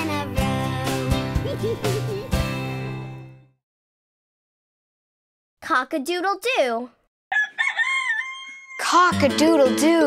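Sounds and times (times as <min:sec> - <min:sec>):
music and singing: 0:00.0 - 0:02.6, 0:08.8 - 0:10.0
rooster crowing: 0:07.3 - 0:08.8.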